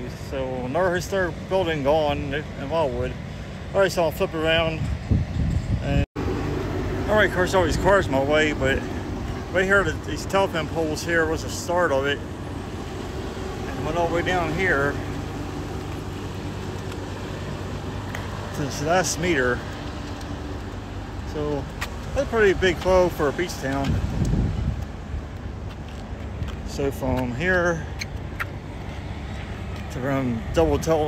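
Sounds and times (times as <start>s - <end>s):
road traffic noise: 0.0s - 31.0s
car engine humming: 6.2s - 31.0s.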